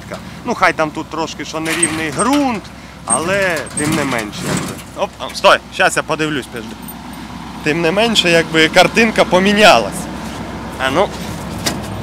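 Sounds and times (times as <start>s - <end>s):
combine harvester engine idling: 0.0s - 12.0s.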